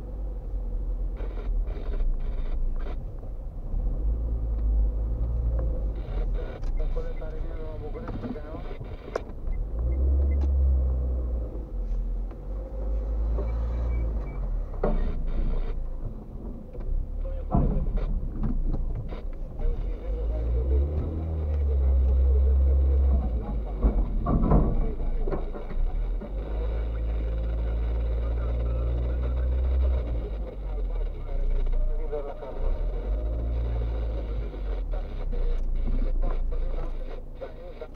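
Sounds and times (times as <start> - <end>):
car engine and road rumble: 0.0 - 37.9.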